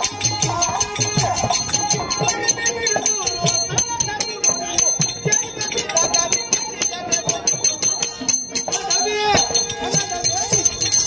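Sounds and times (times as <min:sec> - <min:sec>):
hand drum beating: 0:00.0 - 0:11.0
metal bells jingling: 0:00.0 - 0:11.0.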